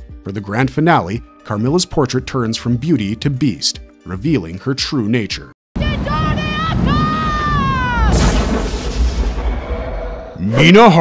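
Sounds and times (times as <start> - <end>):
deep boom with low rumble: 8.0 - 10.4.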